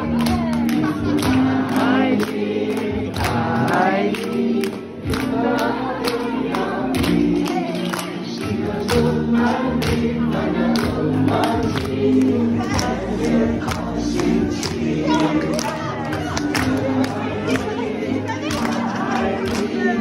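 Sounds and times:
hand clapping on the beat: 0.0s - 17.8s, 18.4s - 20.0s
group singing a lively song: 0.0s - 20.0s.

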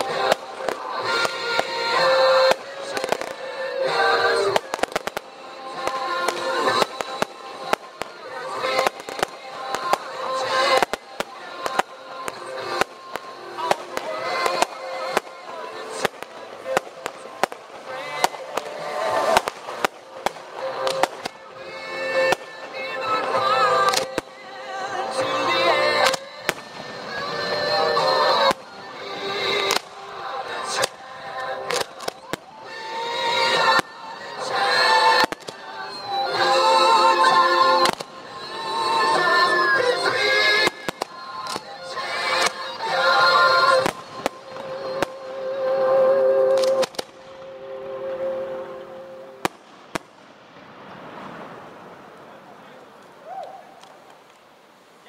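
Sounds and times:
firework shells bursting: 0.0s - 24.5s, 25.1s - 48.0s
song with singing: 0.0s - 49.6s.

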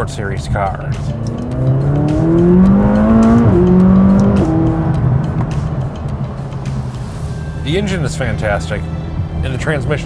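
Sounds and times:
sports car accelerating past: 1.0s - 7.0s.

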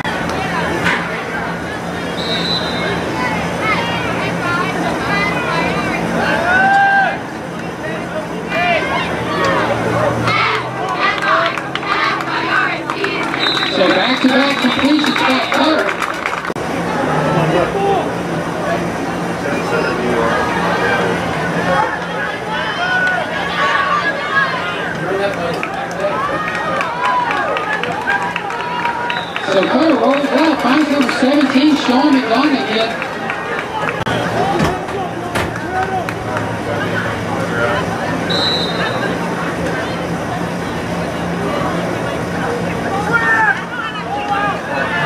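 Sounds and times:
crowd talking and calling out: 0.0s - 45.0s
short high whistle: 2.2s - 3.0s, 38.3s - 39.1s.

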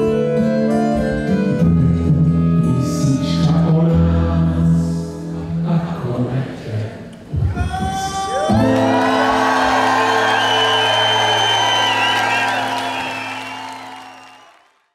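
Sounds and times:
audience cheering: 8.2s - 14.9s
live band holding a chord: 8.5s - 14.6s
high whistles: 9.6s - 14.6s.

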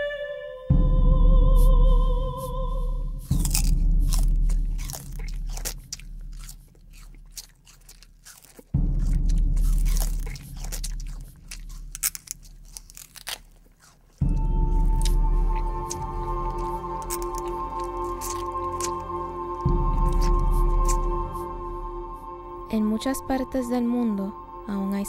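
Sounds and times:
crunching sugar cane: 3.2s - 21.5s
music with steady tones: 14.1s - 25.0s
low drone: 14.2s - 25.0s.

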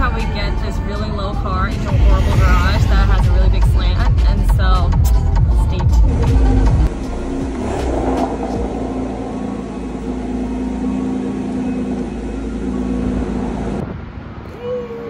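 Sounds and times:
car engine running at low revs: 0.0s - 14.5s.

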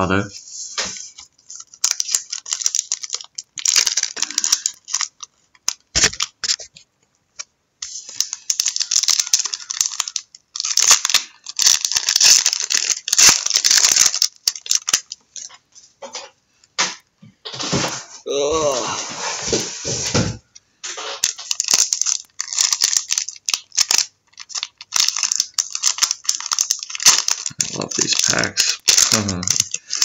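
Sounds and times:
plastic wrappers crinkling and tearing: 0.6s - 15.7s, 20.8s - 30.0s.

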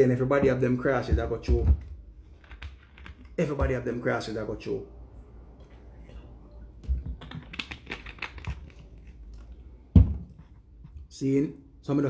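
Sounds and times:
plastic bottle crackling: 7.0s - 9.5s
plastic bottle bump: 10.0s - 10.4s.

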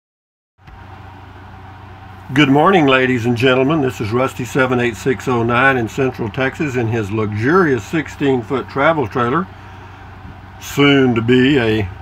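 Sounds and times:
steady low hum with faint hiss: 0.6s - 12.0s.

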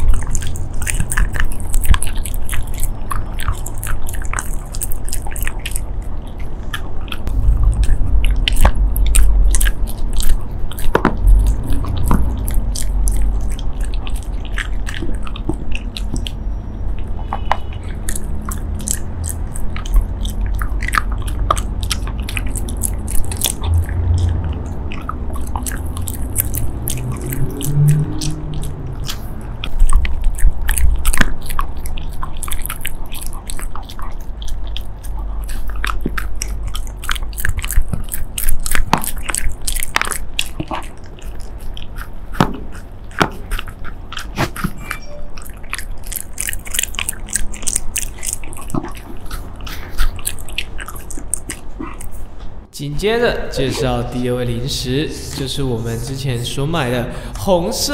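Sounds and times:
dog chewing a treat: 0.0s - 57.9s.

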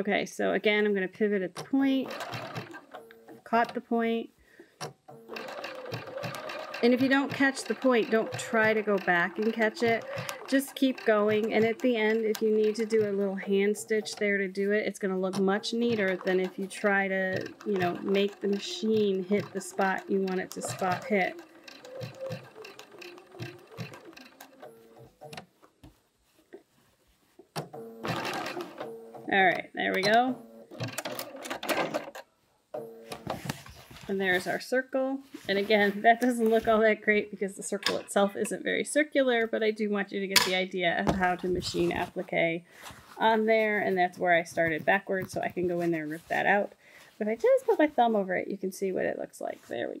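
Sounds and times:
sewing machine stitching: 1.6s - 3.8s, 5.1s - 25.4s, 27.8s - 32.2s.

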